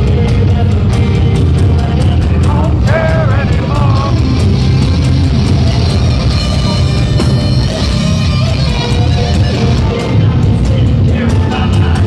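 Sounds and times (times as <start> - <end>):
heavy metal band playing live: 0.0 - 12.0
singer's voice: 0.0 - 12.0.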